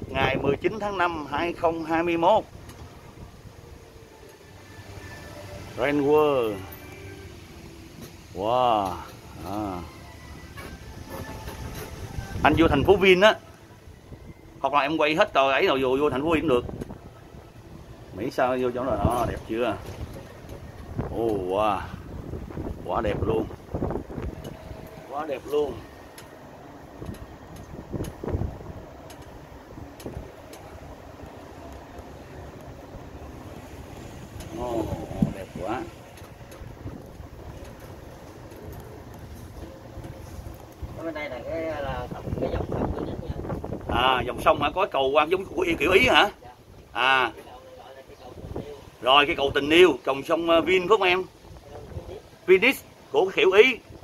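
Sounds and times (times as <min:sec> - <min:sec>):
tyres rumbling on road: 0:00.0 - 0:54.0.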